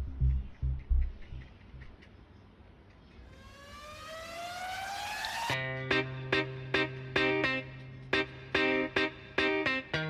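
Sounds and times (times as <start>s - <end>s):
rising tone sweep: 3.3s - 5.6s.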